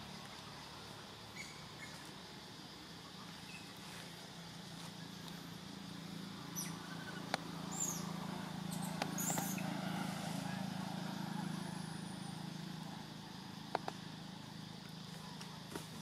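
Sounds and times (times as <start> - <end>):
low motor hum: 0.0 - 16.0
sharp clicks and snaps: 13.7 - 14.0.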